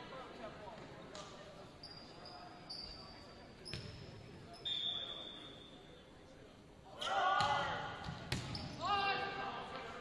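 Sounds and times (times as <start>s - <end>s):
faint high squeaks: 1.8s - 3.9s.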